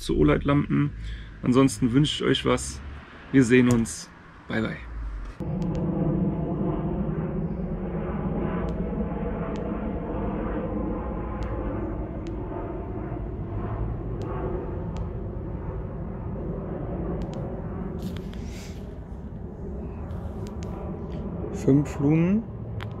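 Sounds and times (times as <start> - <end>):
low rumble of night background: 0.0 - 23.0
faint sharp clicks: 9.5 - 9.7, 11.4 - 11.6, 12.2 - 12.4, 17.2 - 17.5, 20.0 - 21.3.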